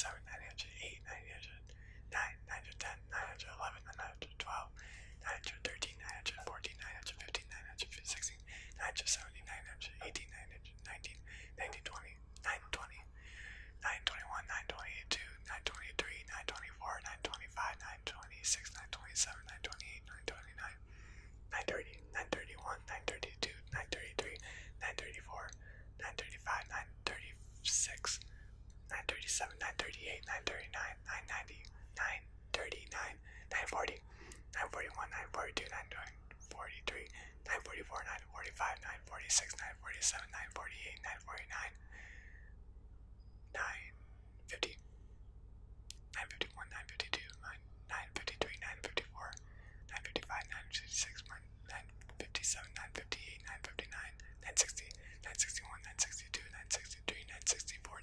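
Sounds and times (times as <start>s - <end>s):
man whispering: 0.0s - 20.9s, 21.5s - 42.2s, 43.2s - 44.9s, 45.9s - 58.0s.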